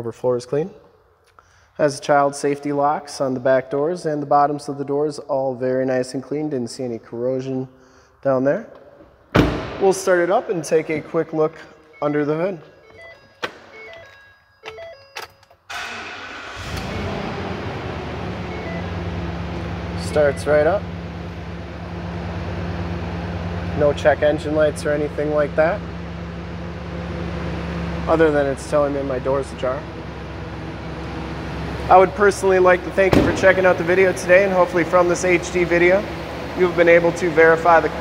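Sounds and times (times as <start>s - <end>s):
engine starter cranking: 14.7s - 18.8s
engine idling: 15.7s - 38.0s.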